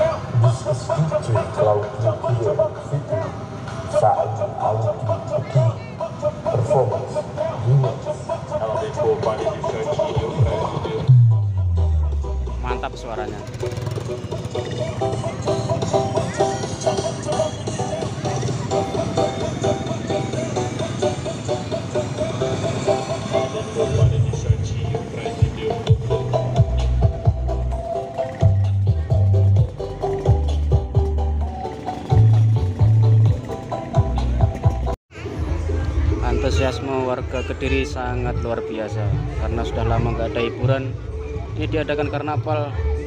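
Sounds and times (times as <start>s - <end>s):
crowd voices: 0.0s - 43.0s
sound system music with sub-bass: 6.4s - 38.4s.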